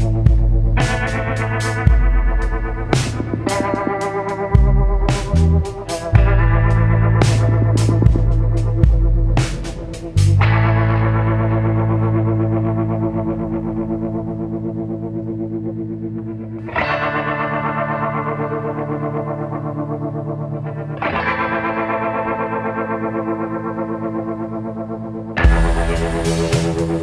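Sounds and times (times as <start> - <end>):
distorted electric guitar chords: 0.0 - 27.0.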